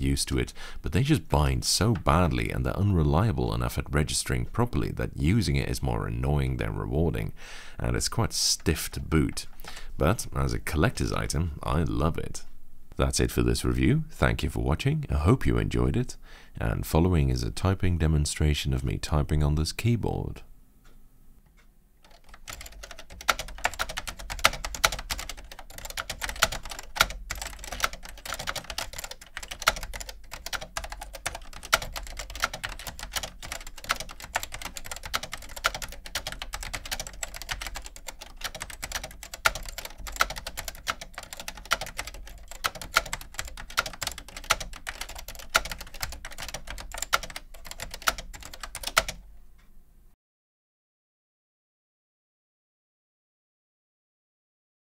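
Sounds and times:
keyboard typing clacks: 22.1 - 49.2.

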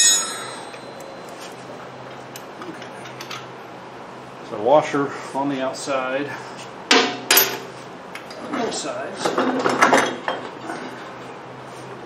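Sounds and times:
low steady hum: 0.0 - 9.4.

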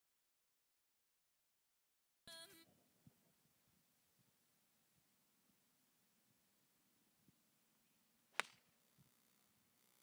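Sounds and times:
golf club striking ball: 8.3 - 8.8.

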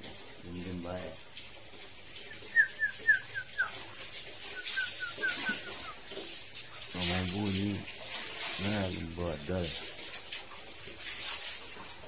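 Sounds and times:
bird chirping: 2.3 - 3.8, 4.5 - 6.0.

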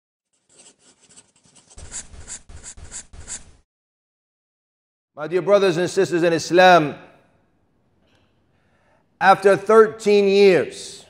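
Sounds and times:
pen scratching on paper: 0.3 - 3.6.

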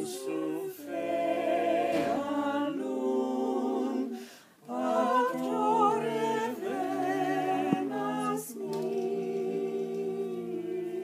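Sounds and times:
voices singing in close harmony: 0.0 - 11.0.

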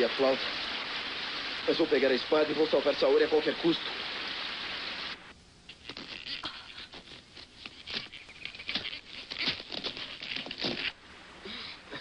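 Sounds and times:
footsteps on loose rock and gravel: 7.1 - 11.0.

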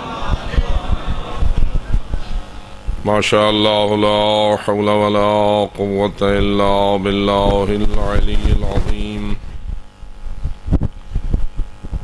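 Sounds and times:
dull low thumps: 0.2 - 4.3, 5.6 - 12.0.

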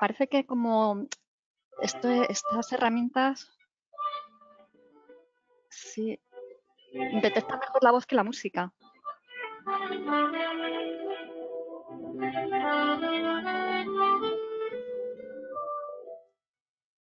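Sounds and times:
violin music over a call: 1.8 - 2.7, 9.6 - 14.6.

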